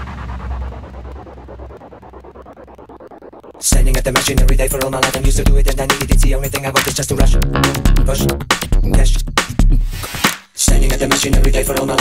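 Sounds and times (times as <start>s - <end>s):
low hum: 0.0s - 4.7s
fast electronic pulsing: 0.0s - 8.4s.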